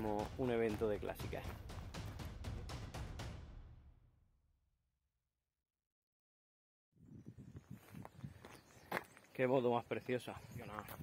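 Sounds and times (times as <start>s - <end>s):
faint footsteps on gravel: 0.0s - 2.2s, 7.6s - 11.0s.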